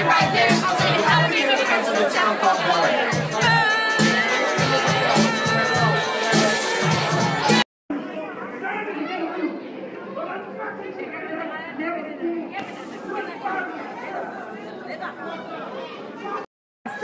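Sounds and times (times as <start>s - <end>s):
crowd babble: 0.0s - 17.0s.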